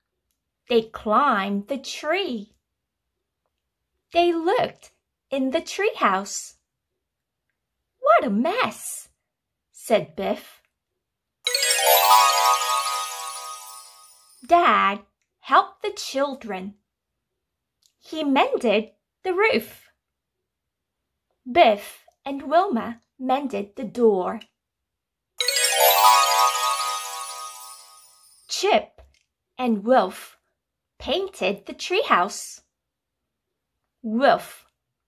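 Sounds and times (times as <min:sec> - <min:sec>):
bright chime jingle: 0:11.5 - 0:14.5, 0:25.4 - 0:28.5.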